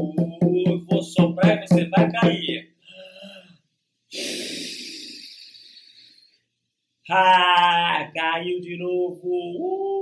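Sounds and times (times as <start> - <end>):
man blowing breath into microphone: 2.9 - 6.4.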